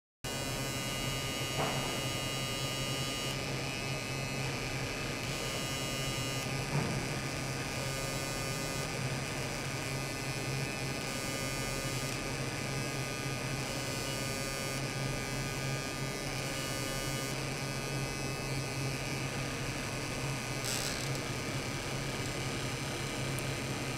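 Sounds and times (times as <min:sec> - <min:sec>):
electrical buzz: 0:00.3 - 0:23.9.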